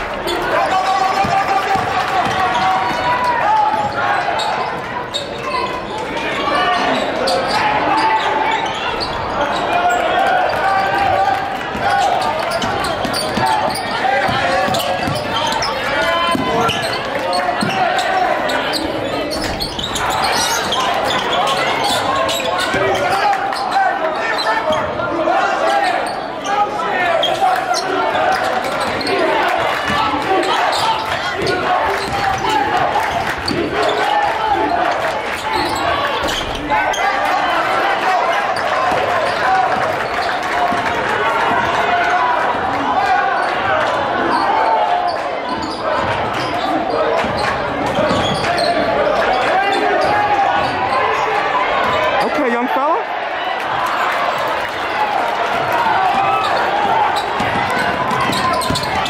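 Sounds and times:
din of indistinct voices: 0:00.0 - 0:59.0
basketball bouncing on hardwood: 0:57.4 - 0:59.0.

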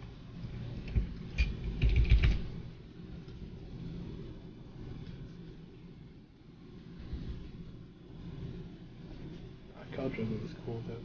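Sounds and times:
computer keyboard clicks: 0:01.8 - 0:02.4.

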